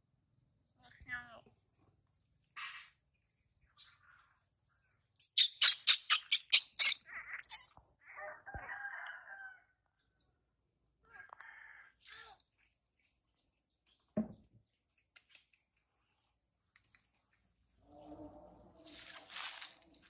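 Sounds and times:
rooster crowing: 0:08.0 - 0:09.8, 0:11.2 - 0:12.0.

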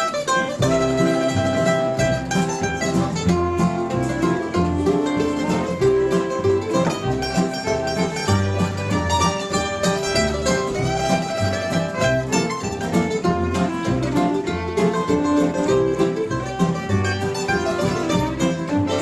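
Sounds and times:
mandolin picking melody: 0:00.0 - 0:19.0
plucked strings strumming: 0:00.0 - 0:19.0
upright bass notes: 0:00.0 - 0:19.0.

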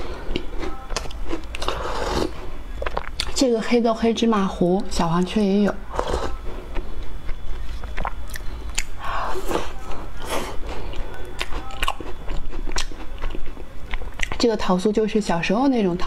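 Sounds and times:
person chewing crunchy cookie: 0:00.0 - 0:03.4, 0:05.9 - 0:14.4.

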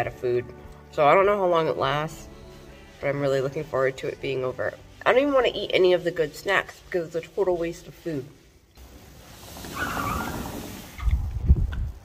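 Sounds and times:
sliding glass door rumbling open: 0:08.8 - 0:11.6.

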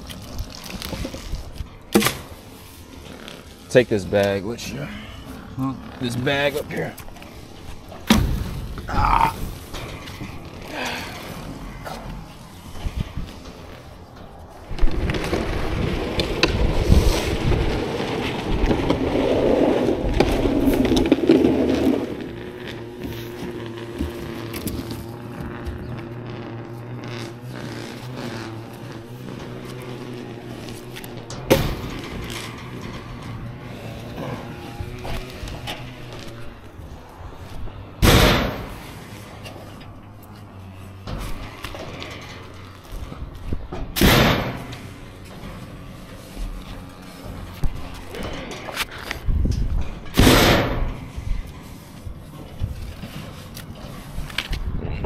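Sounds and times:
yard debris rustling and scraping: 0:00.0 - 0:55.0
logs thudding into trailer: 0:01.9 - 0:02.4, 0:07.9 - 0:11.2, 0:31.1 - 0:36.1, 0:38.0 - 0:39.8, 0:41.1 - 0:45.8, 0:49.4 - 0:51.5.

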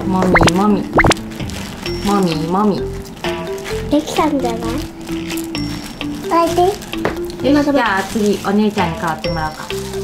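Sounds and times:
light background music: 0:00.0 - 0:10.0
rising plop-like sweeps: 0:00.3 - 0:01.2
sliding wobbling pitched tones: 0:00.3 - 0:01.2.

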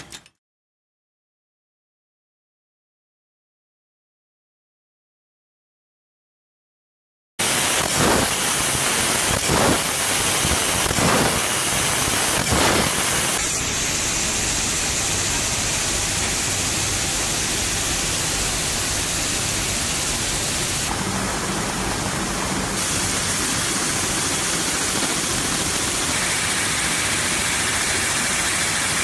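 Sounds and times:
steady rushing hiss: 0:07.4 - 0:29.0.

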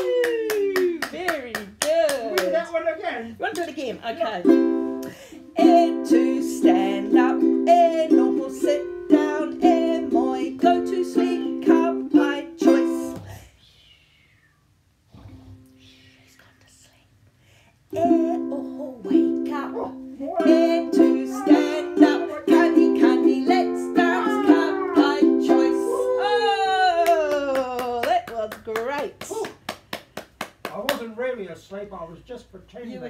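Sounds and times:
ukulele strumming chords: 0:04.4 - 0:13.2, 0:17.9 - 0:26.1
woman singing: 0:05.5 - 0:13.4, 0:17.9 - 0:28.1.

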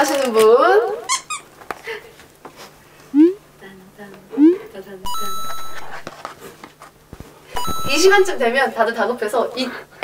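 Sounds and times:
electronic beep stepping up: 0:05.1 - 0:06.0, 0:07.6 - 0:08.6.

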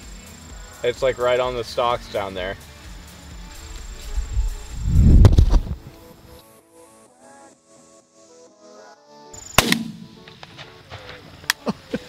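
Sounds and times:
music: 0:00.0 - 0:12.0
sharp bang: 0:09.6 - 0:10.3
shotgun blast: 0:09.6 - 0:10.3.

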